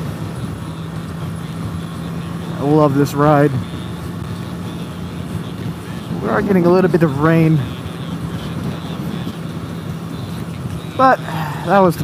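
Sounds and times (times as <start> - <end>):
motorcycle engine at speed: 0.0 - 12.0
wind: 0.0 - 12.0.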